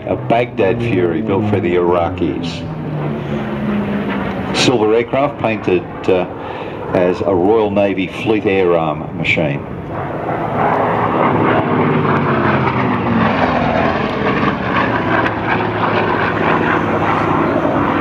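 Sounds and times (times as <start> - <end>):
propeller aircraft passing: 0.0 - 18.0.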